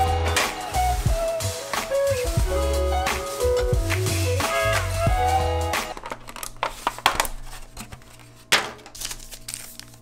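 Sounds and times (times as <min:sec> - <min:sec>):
plastic packaging crinkling: 0:05.8 - 0:10.0.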